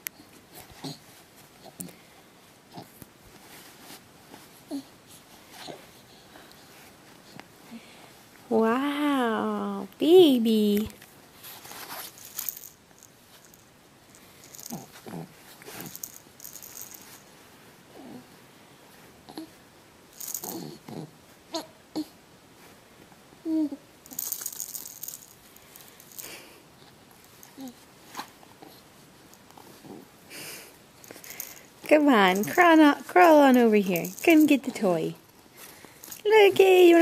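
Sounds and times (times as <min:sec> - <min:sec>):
soft breaths or sniffs: 0:03.3 - 0:08.3, 0:25.5 - 0:31.8, 0:35.4 - 0:36.2
person speaking: 0:08.5 - 0:11.0, 0:31.8 - 0:35.2, 0:36.2 - 0:37.0
toy rattle shaking: 0:11.6 - 0:15.0, 0:15.7 - 0:17.3, 0:20.2 - 0:20.7, 0:24.0 - 0:26.4, 0:31.0 - 0:35.2, 0:36.0 - 0:37.0.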